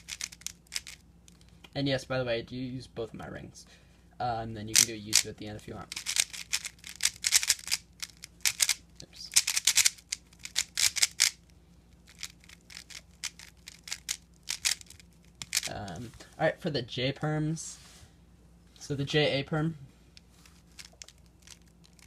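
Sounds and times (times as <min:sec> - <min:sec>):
puzzle cube clicking turns: 0:00.0 - 0:01.4, 0:04.7 - 0:11.4, 0:12.1 - 0:15.7, 0:20.6 - 0:22.0.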